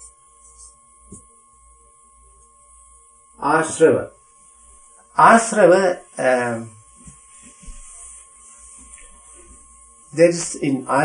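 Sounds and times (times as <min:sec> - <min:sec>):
faint thin steady tone: 0:00.0 - 0:11.0
low electrical hum: 0:00.0 - 0:11.0.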